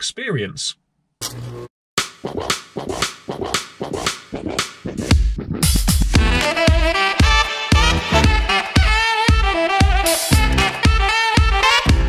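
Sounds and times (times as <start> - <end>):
upbeat music: 2.0 - 12.0.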